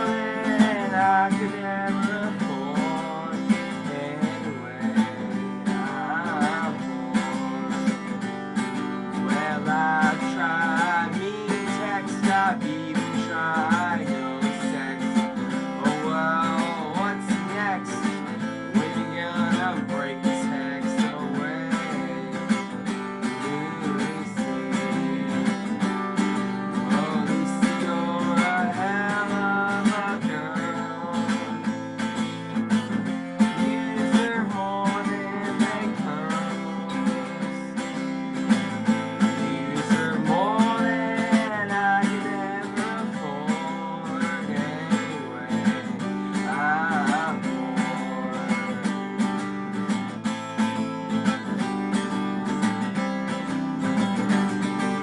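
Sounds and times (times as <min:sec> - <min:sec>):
acoustic guitar strummed fast: 0:00.0 - 0:55.0.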